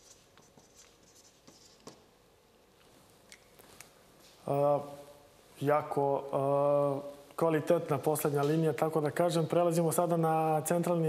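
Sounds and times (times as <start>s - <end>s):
marker scratching on board: 0.0s - 2.0s.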